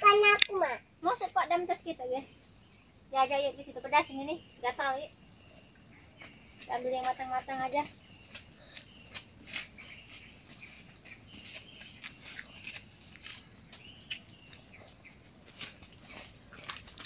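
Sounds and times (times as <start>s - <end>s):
insects chirring: 0.0s - 17.0s
leaves and stems rustling: 6.2s - 17.0s.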